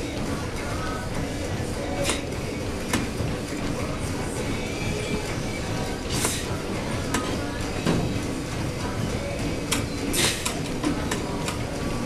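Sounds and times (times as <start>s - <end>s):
low rumbling gym noise: 0.0s - 12.0s.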